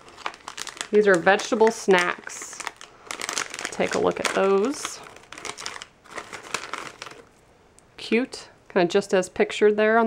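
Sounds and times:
plastic snack bag crinkling: 0:00.0 - 0:07.4.

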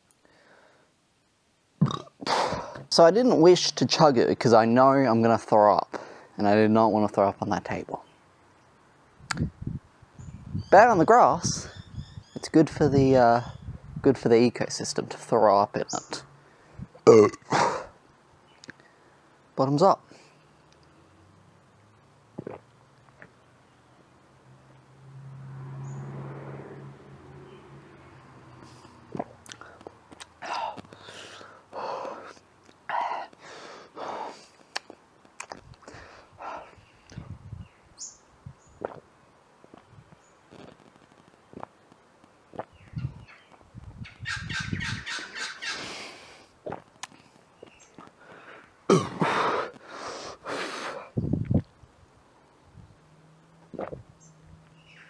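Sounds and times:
breaths and gasps: 0:00.2 - 0:01.0, 0:05.9 - 0:06.4, 0:28.6 - 0:34.6, 0:35.8 - 0:36.9, 0:48.1 - 0:51.2
man gulping a drink: 0:01.8 - 0:02.9, 0:17.0 - 0:17.8, 0:22.4 - 0:23.4, 0:38.8 - 0:39.1, 0:41.5 - 0:41.8, 0:42.5 - 0:42.8, 0:46.6 - 0:47.3, 0:53.7 - 0:54.0.

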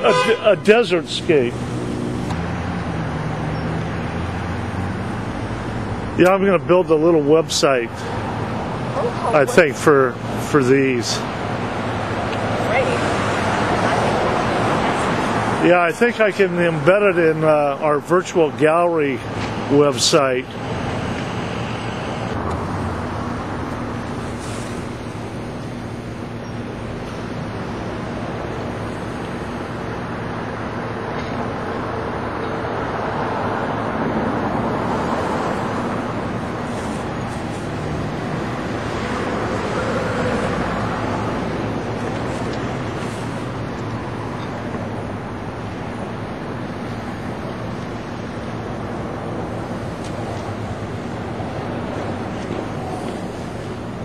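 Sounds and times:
cars passing: 0:00.0 - 0:54.0.

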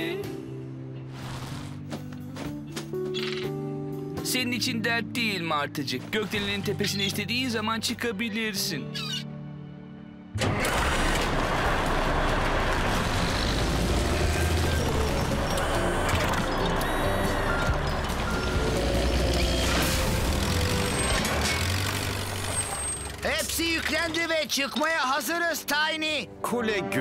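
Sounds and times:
cartoon background music: 0:00.0 - 0:11.1, 0:13.0 - 0:27.0
construction vehicle engine: 0:10.4 - 0:24.5.

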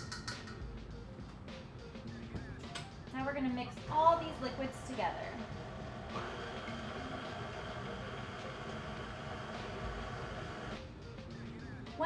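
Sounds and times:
electric stand mixer running: 0:04.7 - 0:10.8.

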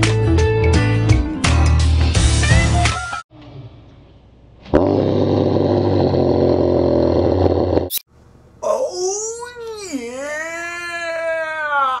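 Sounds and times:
young man yelling: 0:08.6 - 0:12.0.

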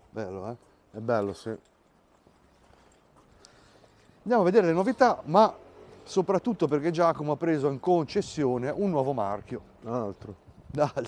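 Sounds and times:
faint footsteps on paving: 0:00.0 - 0:06.8.

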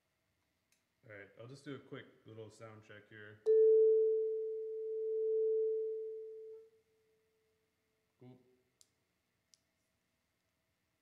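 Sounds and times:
faint low sound: 0:03.4 - 0:07.2.

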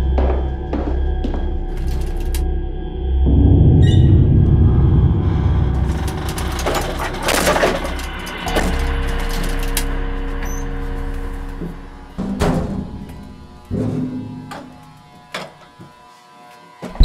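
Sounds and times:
heavy low rumble: 0:00.0 - 0:15.0
dark film score: 0:00.0 - 0:15.3
held low drone: 0:00.0 - 0:15.4.

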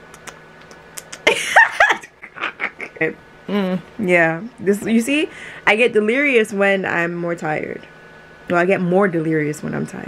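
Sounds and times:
woman laughing loudly: 0:01.1 - 0:03.2.

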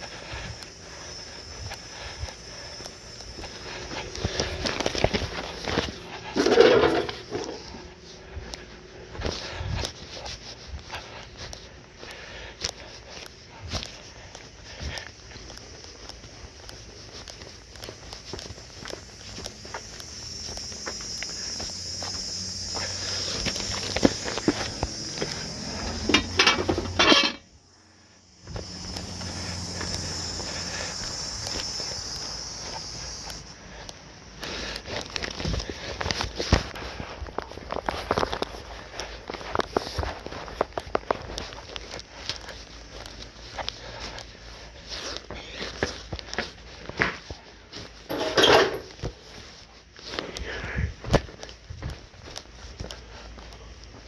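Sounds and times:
crickets chirring: 0:00.0 - 0:54.0
footsteps on walkway and steps: 0:00.0 - 0:54.0
rustling and clattering: 0:04.7 - 0:07.7, 0:26.0 - 0:27.4, 0:48.1 - 0:49.2.

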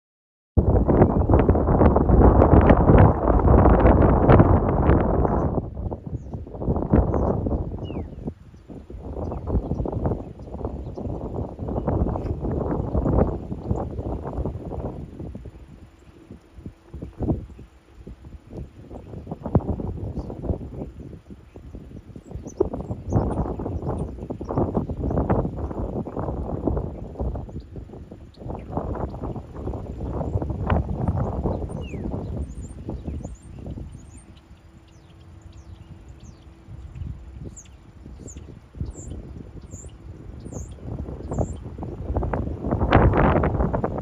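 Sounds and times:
wind buffeting microphone: 0:00.6 - 0:44.0
small birds chirping: 0:03.5 - 0:44.0.

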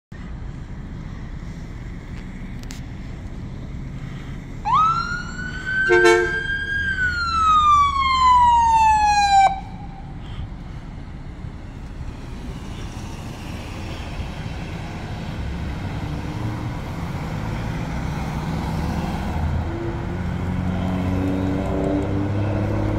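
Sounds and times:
engine and traffic noise: 0:00.1 - 0:22.9
ambulance siren: 0:04.6 - 0:10.2.

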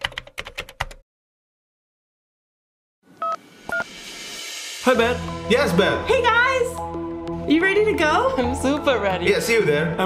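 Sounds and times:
smartphone beeps: 0:03.2 - 0:03.9.

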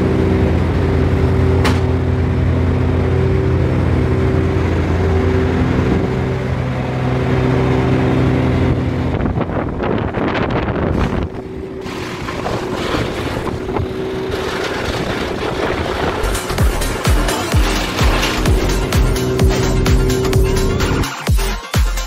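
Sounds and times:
wood chipper engine running: 0:00.0 - 0:21.2.

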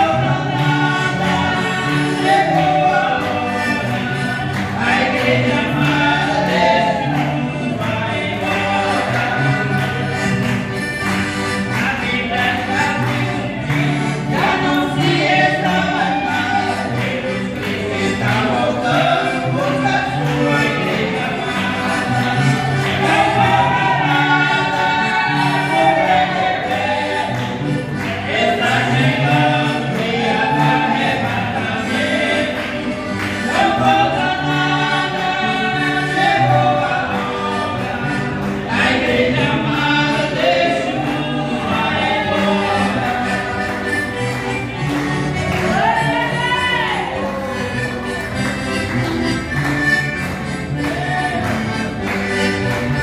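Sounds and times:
man and woman singing a hymn: 0:00.0 - 0:47.6
piano accordion playing: 0:00.0 - 0:53.0.

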